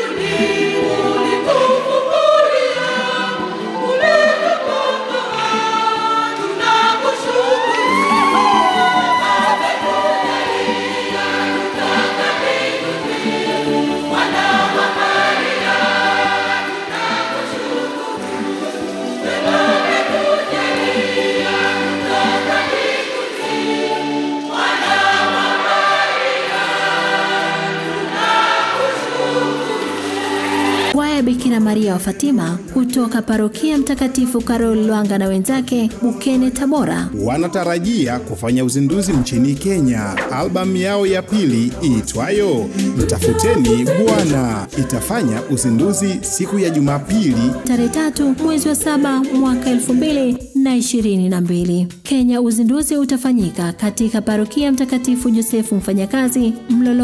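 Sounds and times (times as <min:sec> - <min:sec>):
children's choir singing a hymn: 0:00.0 - 0:31.0, 0:42.9 - 0:49.9
instrumental accompaniment: 0:00.0 - 0:50.6.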